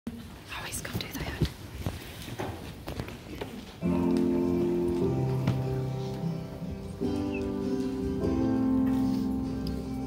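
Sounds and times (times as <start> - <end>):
audience murmuring and whispering: 0.1 - 10.0
accompaniment track with held chords: 3.8 - 10.0.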